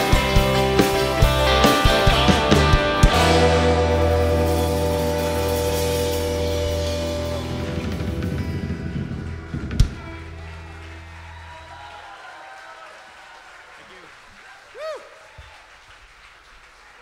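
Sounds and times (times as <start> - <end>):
rock band final chord ringing: 0.0 - 11.7.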